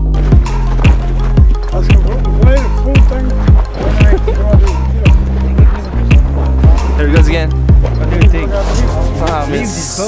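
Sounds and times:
deep kick drum beat: 0:00.0 - 0:08.5
sustained bass line: 0:00.0 - 0:09.9.

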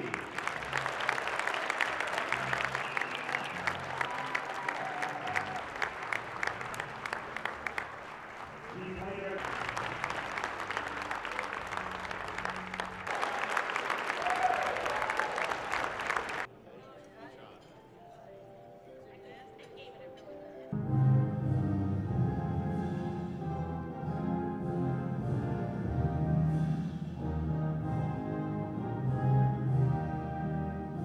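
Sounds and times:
audience applauding: 0:00.0 - 0:16.5.

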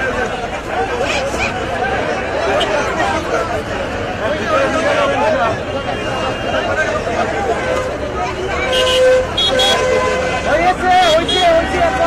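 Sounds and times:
crowd talking and calling out: 0:00.0 - 0:12.0
vehicle horn toots: 0:08.6 - 0:11.7.

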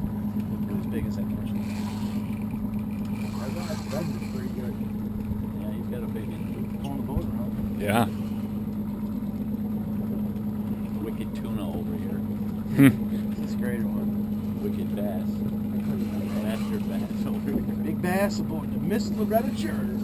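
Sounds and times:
outboard engine idling: 0:00.0 - 0:20.0.

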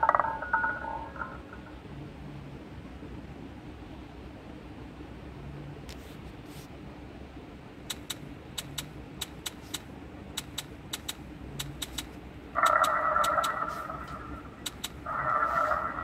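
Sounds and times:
sharp chip clicks: 0:07.8 - 0:15.0.

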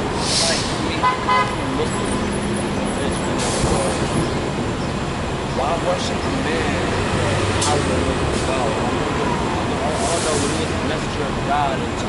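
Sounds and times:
bus engine droning: 0:00.0 - 0:12.0
bus air brake hiss: 0:00.2 - 0:00.8, 0:10.0 - 0:10.7.

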